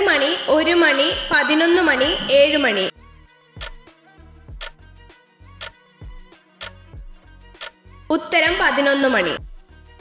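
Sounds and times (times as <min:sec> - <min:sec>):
timer ticking: 0:03.6 - 0:03.8, 0:04.6 - 0:04.8, 0:06.6 - 0:06.8, 0:07.6 - 0:07.8
music with low pulsing beat: 0:09.4 - 0:10.0.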